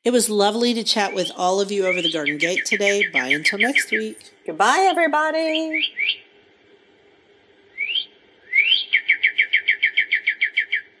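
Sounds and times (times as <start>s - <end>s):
songbird singing: 0.7s - 4.5s, 5.6s - 6.2s, 7.8s - 11.0s.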